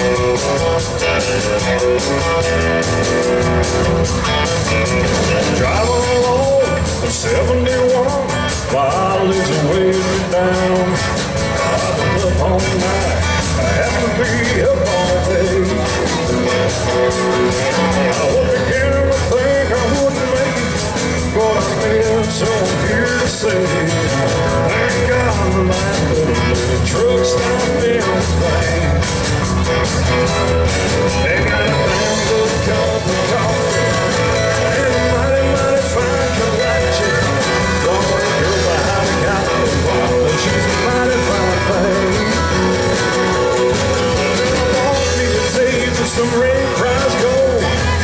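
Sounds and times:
country band playing: 0.0 - 48.0
drums with steady beat: 0.0 - 48.0
wavering lead guitar line: 0.0 - 48.0.

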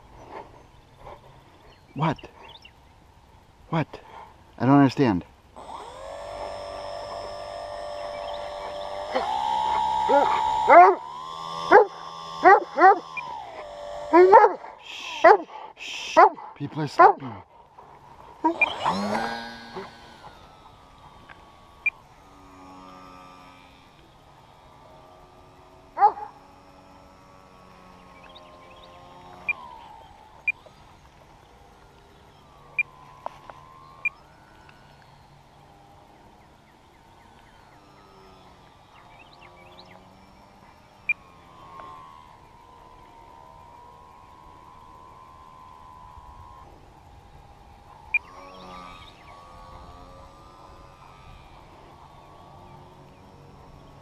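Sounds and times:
model plane motor whine: 0.0 - 54.0.

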